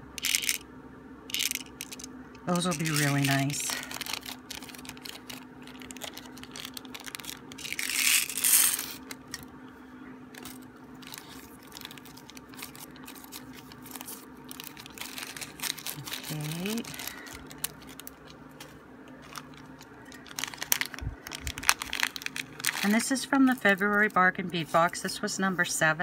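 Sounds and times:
plastic bag crinkling: 0:01.3 - 0:09.5, 0:10.3 - 0:24.4.

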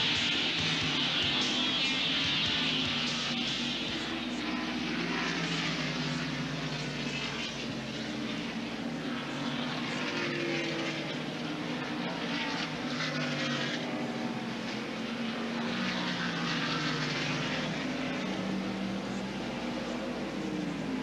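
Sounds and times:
race car engines droning: 0:00.0 - 0:21.0.

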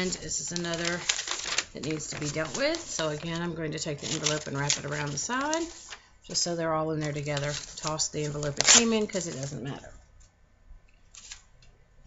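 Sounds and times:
paper rustling: 0:00.0 - 0:09.8, 0:11.1 - 0:11.5.

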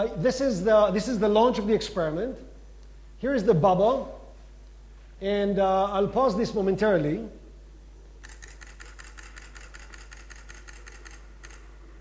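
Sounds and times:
low electrical hum: 0:00.0 - 0:12.0
keyboard keys clicking: 0:08.2 - 0:11.7.

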